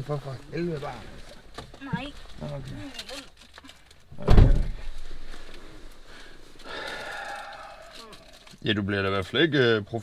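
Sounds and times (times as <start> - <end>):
breath through the nose: 6.0 - 8.3.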